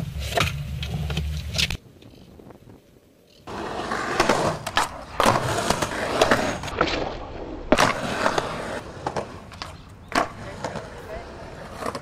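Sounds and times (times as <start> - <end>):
skateboard wheels rolling on concrete: 0.0 - 12.0
skateboard clacks: 7.7 - 12.0.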